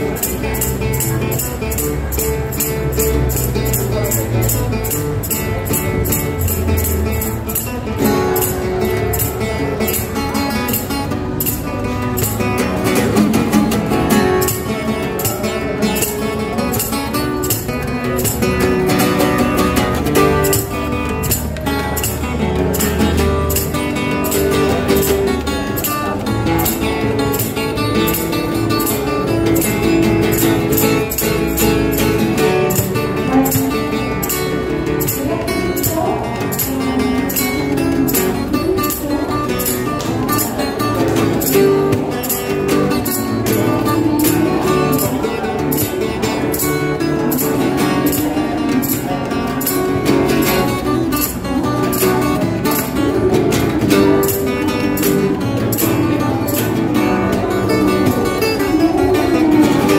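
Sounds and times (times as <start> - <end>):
fingerpicked acoustic guitar: 0.0 - 59.9.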